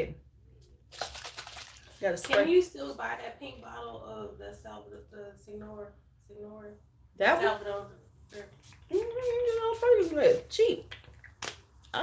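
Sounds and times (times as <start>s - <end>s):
spray bottle misting hiss: 8.4s - 10.5s.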